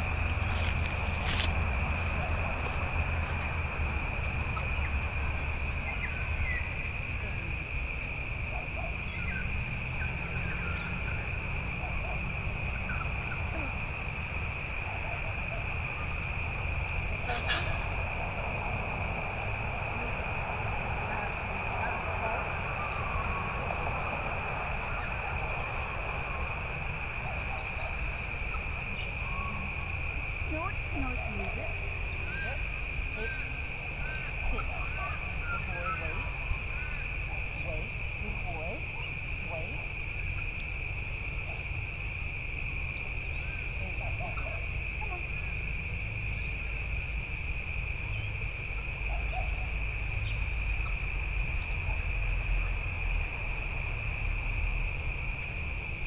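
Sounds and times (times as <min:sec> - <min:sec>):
low wind rumble: 0:00.0 - 0:56.0
steady high-pitched whine: 0:00.0 - 0:56.0.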